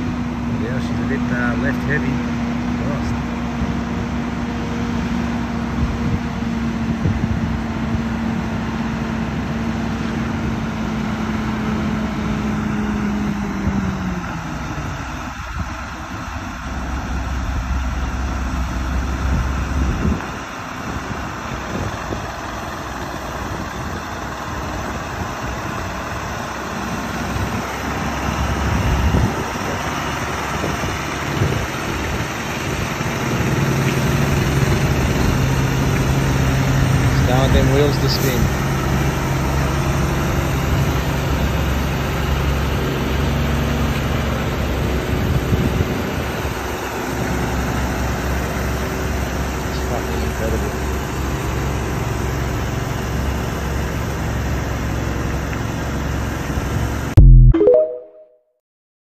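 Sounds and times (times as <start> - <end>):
diesel truck engine under load: 0.0 - 57.2.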